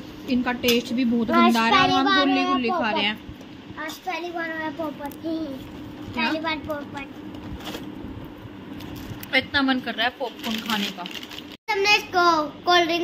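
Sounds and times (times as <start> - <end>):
steady low hum: 0.0 - 13.0
child speaking: 1.3 - 3.1, 3.8 - 5.6, 6.2 - 7.1, 11.7 - 13.0.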